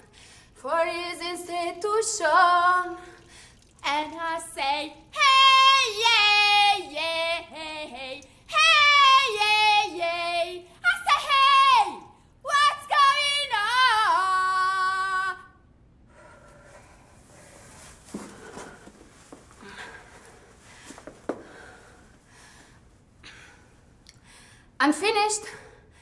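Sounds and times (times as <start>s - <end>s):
woman singing unaccompanied: 0.6s - 3.2s, 3.8s - 15.5s
soft rustles: 16.5s - 22.7s.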